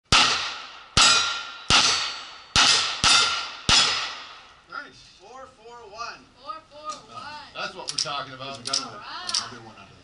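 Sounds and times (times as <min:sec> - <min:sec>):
pistol shots: 0:00.1 - 0:04.4
ringing of struck steel plates: 0:01.0 - 0:04.0.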